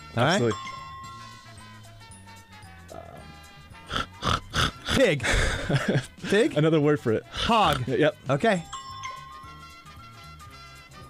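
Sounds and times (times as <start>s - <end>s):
faint background music: 0.0s - 11.0s
man imitating pig grunts: 2.9s - 5.8s, 7.3s - 8.0s.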